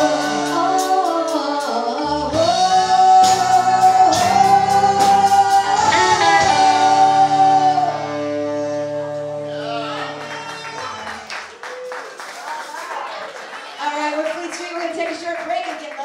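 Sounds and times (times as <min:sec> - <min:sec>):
live rock band: 0:00.0 - 0:12.6.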